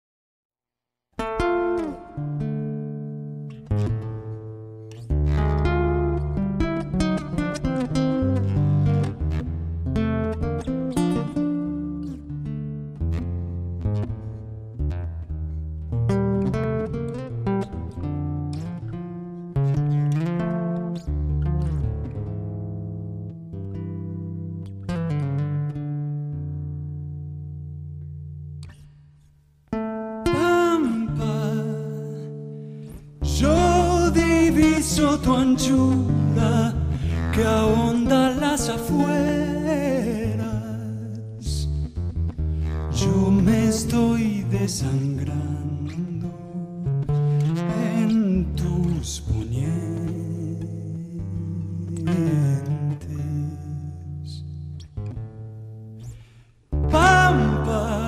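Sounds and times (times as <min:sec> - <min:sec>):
plucked acoustic guitar: 0:01.2 - 0:58.0.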